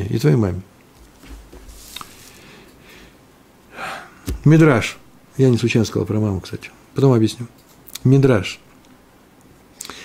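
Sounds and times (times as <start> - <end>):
man breathing in: 2.2 - 4.2
man speaking: 4.3 - 8.7.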